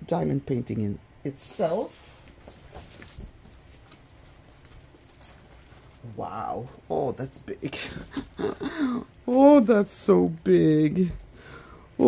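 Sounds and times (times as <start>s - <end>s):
faint handling noise: 1.8s - 8.4s.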